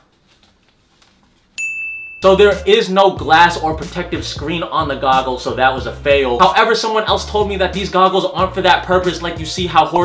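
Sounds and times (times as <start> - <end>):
bright chime ding: 1.6 - 2.7.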